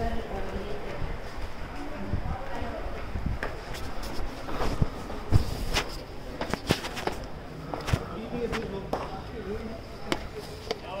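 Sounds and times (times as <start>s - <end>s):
faint voices: 0.0s - 11.0s
hard-soled footsteps on stone steps: 2.5s - 9.2s, 10.0s - 11.0s.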